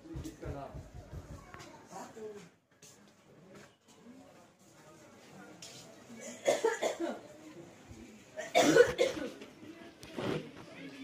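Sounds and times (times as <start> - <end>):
person coughing: 8.4 - 9.4.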